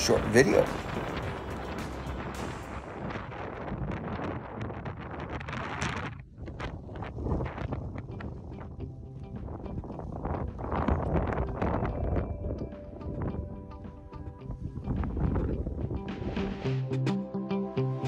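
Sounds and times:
background music with beat: 0:00.0 - 0:02.9, 0:10.7 - 0:18.0
wind buffeting microphone: 0:00.0 - 0:16.6.

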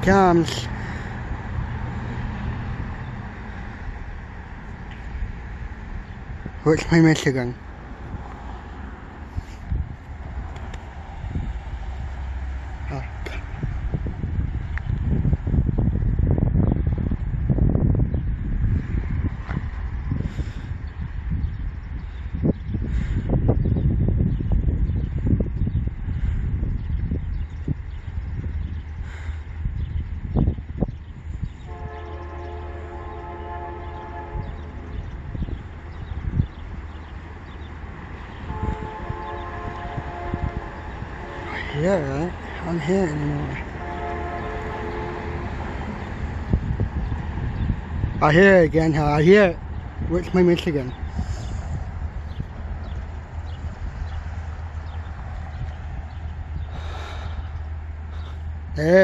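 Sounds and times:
wind rumble on microphone: 0:00.0 - 0:59.0
distant train horn blasts: 0:31.6 - 0:35.0, 0:38.4 - 0:41.8, 0:43.5 - 0:46.1.

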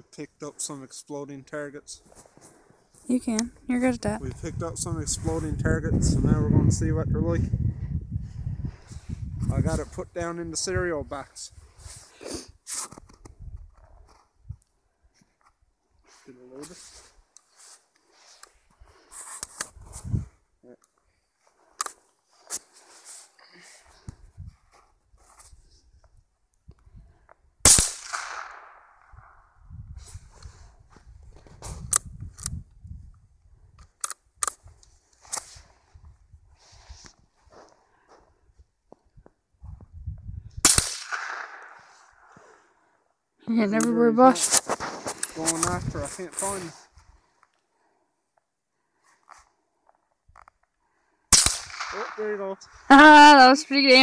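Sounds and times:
rifle shots with echo: 0:27.7 - 0:29.0, 0:40.6 - 0:41.9, 0:51.3 - 0:52.4.

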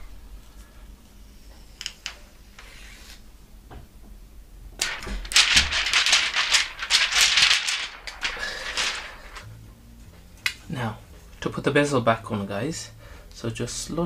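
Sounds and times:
plastic film crinkling: 0:04.8 - 0:09.5.

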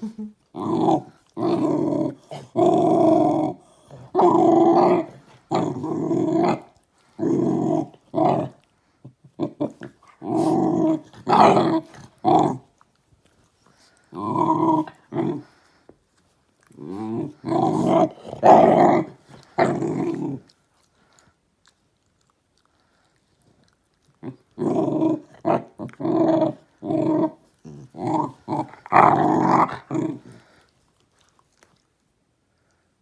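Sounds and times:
small dogs growling: 0:00.0 - 0:12.8, 0:13.7 - 0:15.8, 0:16.6 - 0:21.3, 0:22.2 - 0:31.7.

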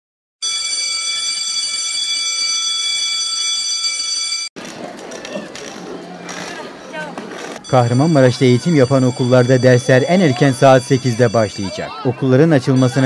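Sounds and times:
bell ringing: 0:00.4 - 0:04.5, 0:07.6 - 0:13.0
murmur of voices: 0:04.6 - 0:13.0.

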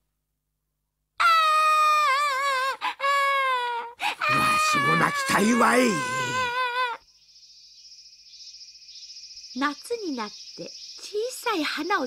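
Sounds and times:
cartoon children crying: 0:01.2 - 0:07.0.

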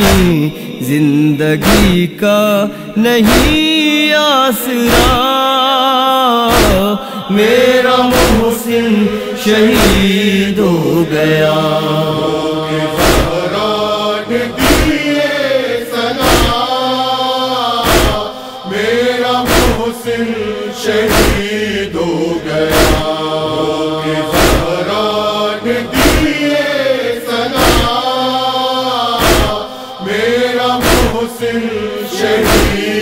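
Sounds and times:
men chanting a lament: 0:00.0 - 0:33.0.

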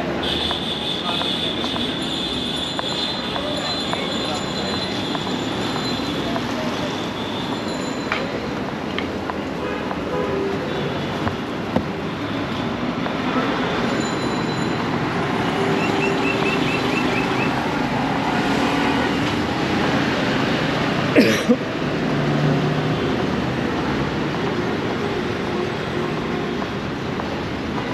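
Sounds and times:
street traffic engines: 0:00.0 - 0:27.9.

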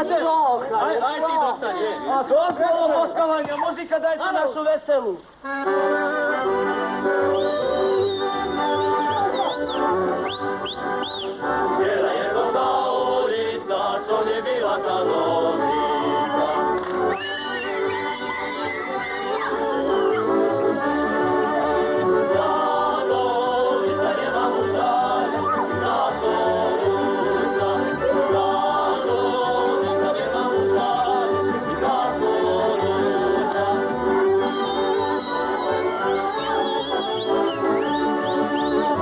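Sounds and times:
folk band: 0:00.0 - 0:39.0
group singing folk song: 0:05.6 - 0:39.0.

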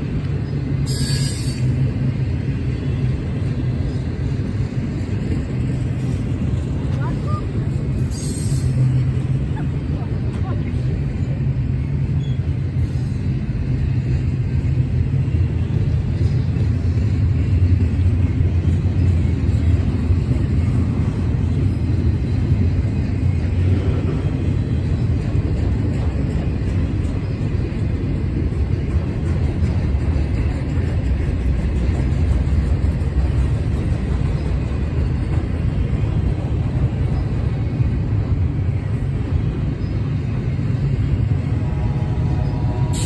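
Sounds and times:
freight train rolling past: 0:00.0 - 0:43.0.

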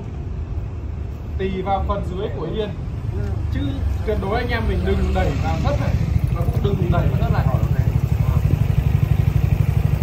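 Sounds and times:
engine idling: 0:04.0 - 0:10.0.

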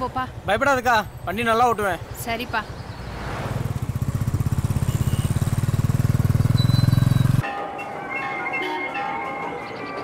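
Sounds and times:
motorcycle engine running: 0:03.6 - 0:07.4
music: 0:07.4 - 0:10.0.

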